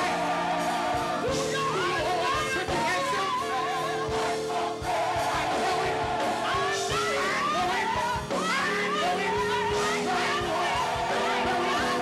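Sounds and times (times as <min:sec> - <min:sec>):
gospel choir singing: 0:00.0 - 0:12.0
instrumental accompaniment: 0:00.0 - 0:12.0.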